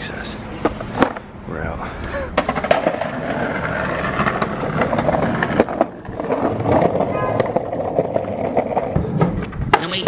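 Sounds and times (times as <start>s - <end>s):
skateboard wheels clacking on joints: 2.1s - 10.0s
skateboard wheels rumbling on concrete: 2.1s - 10.0s.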